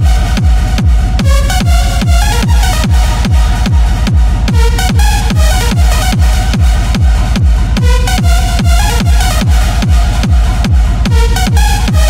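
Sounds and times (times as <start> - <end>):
heavy kick drum: 0.0 - 12.0
synth melody: 0.0 - 12.0.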